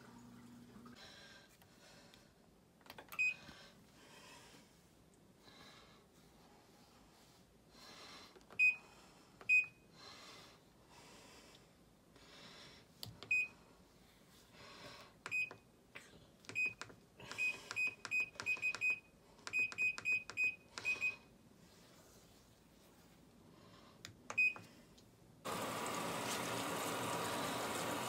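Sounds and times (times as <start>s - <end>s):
washing machine button beeps: 9.4s - 9.8s, 13.2s - 13.5s, 15.3s - 15.6s, 16.5s - 21.2s, 24.3s - 24.7s.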